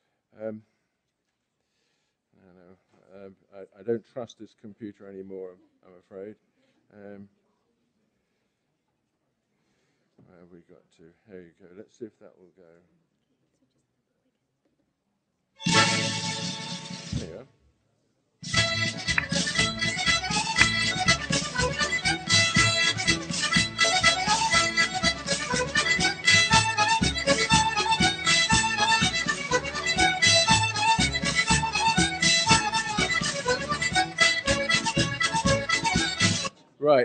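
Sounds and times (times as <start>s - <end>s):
reel dance music: 15.6s - 17.4s, 18.4s - 36.5s.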